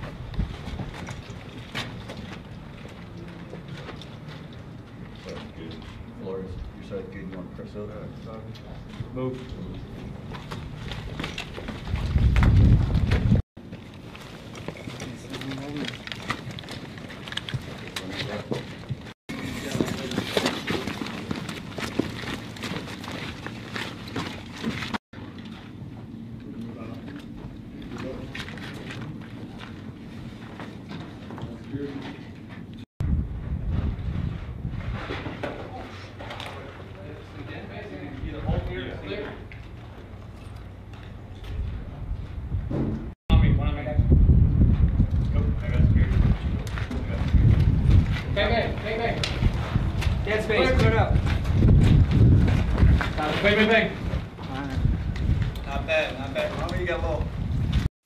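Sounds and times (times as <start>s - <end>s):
footsteps on gritty floor: 8.8s - 25.0s, 46.0s - 57.9s
rifles and gear rattling: 10.2s - 25.8s.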